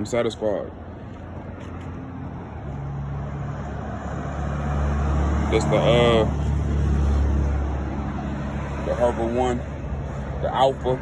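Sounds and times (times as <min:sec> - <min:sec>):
outdoor road noise: 0:00.0 - 0:11.0
vehicle engine hum: 0:00.0 - 0:11.0.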